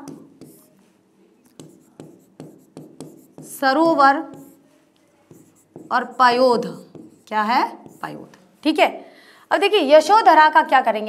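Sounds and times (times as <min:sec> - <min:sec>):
chalk strokes on blackboard: 0:00.0 - 0:08.3.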